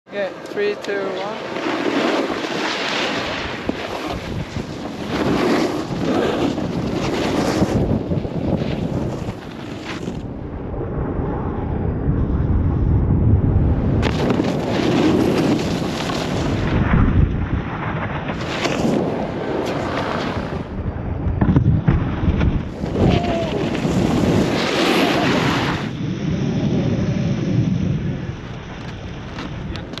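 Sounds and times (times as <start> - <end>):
snowboard edges scraping snow: 0.6 - 10.2, 14.0 - 16.8, 18.3 - 20.7, 22.7 - 26.0
wind buffeting microphone: 3.2 - 30.0.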